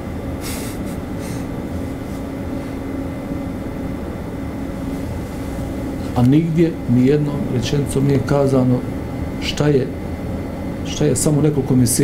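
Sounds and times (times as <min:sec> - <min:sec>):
low mechanical rumble with hum: 0:00.0 - 0:12.0.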